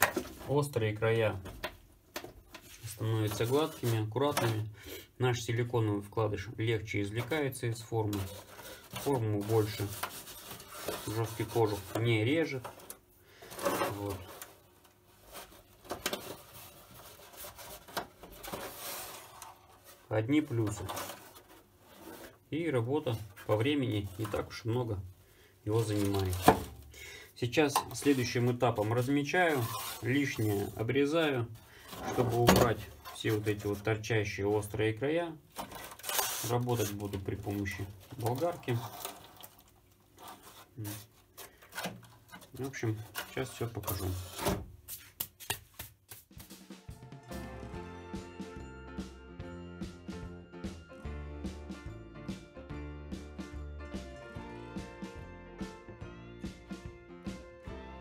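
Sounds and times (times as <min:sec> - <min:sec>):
fibreglass shell scraping: 0:08.0 - 0:22.4, 0:27.8 - 0:30.9, 0:35.6 - 0:44.6
hand rubbing plastic mould shell: 0:27.7 - 0:33.8.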